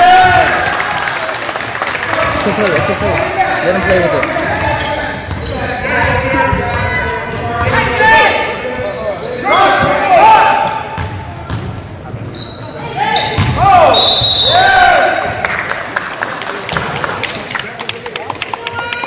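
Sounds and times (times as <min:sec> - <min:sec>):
sneakers squeaking on hardwood: 0:03.4 - 0:14.4
basketball bouncing: 0:03.8 - 0:07.0, 0:11.0 - 0:11.8.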